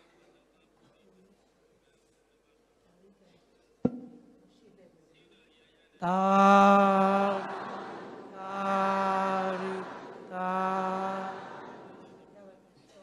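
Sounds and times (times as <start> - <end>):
person chanting long calls: 6.0 - 12.2.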